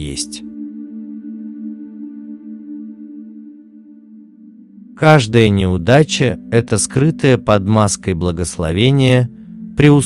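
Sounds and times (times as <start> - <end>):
sustained drone-like background music: 0.0 - 10.0.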